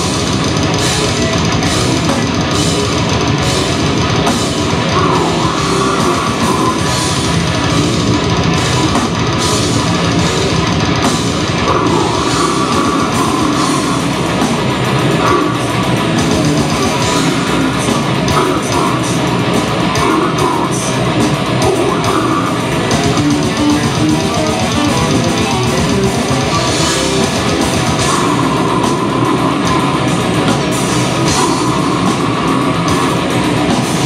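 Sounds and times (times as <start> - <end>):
bass guitar: 0.0 - 34.0
distorted electric guitars: 0.0 - 34.0
fast dense drumming: 0.0 - 34.0
heavy metal band playing: 0.0 - 34.0.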